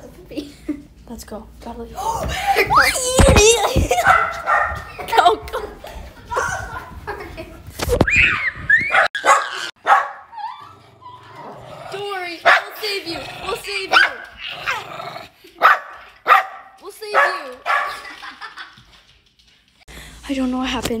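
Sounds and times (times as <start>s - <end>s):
small dog barking: 4.0s - 4.9s, 8.9s - 10.4s, 12.4s - 12.8s, 13.9s - 14.8s, 15.6s - 18.0s.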